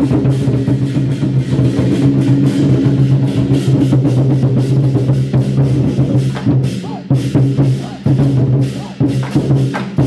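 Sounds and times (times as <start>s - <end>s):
barrel drums beaten fast: 0.0s - 10.0s.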